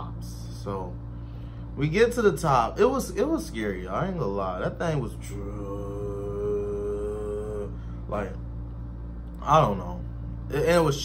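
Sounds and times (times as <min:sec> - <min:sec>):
man humming steady note: 0:05.1 - 0:08.5.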